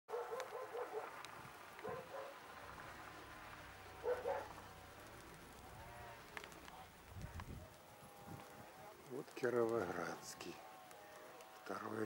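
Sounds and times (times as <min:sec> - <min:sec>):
dog barking: 0:00.1 - 0:01.1, 0:01.8 - 0:02.4, 0:04.0 - 0:04.6.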